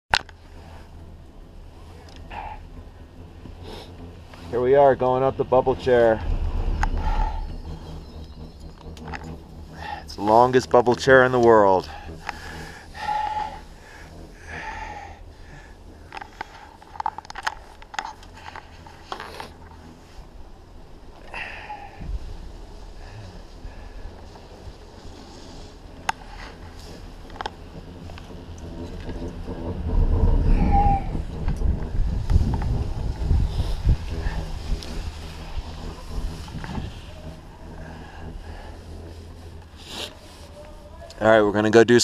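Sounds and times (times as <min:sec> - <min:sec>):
low steady rumble: 0:00.1 - 0:42.0.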